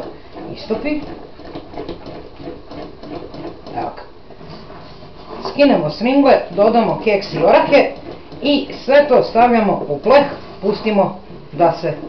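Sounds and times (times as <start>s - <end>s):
wooden spoon scraping a pot: 0.0s - 12.0s.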